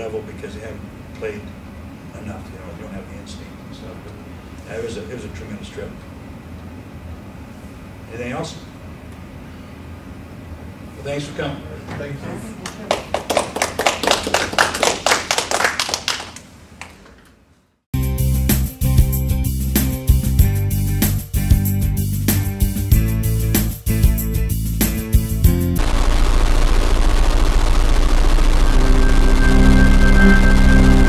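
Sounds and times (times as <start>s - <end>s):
small audience applauding: 12.6s - 17.3s
television static hiss: 25.8s - 30.4s
sustained musical tones: 28.1s - 31.0s.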